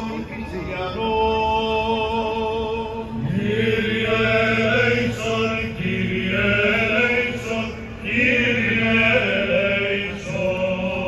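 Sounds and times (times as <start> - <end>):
low drone: 0.0 - 11.0
voices chanting: 3.2 - 11.0.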